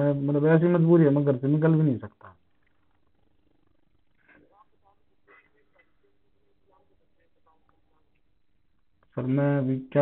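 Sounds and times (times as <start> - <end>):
low steady hum: 0.0 - 10.0
faint voice: 4.2 - 8.2.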